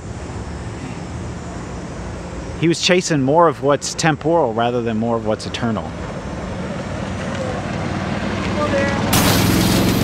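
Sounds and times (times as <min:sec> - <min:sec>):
city traffic rumble: 0:00.0 - 0:10.0.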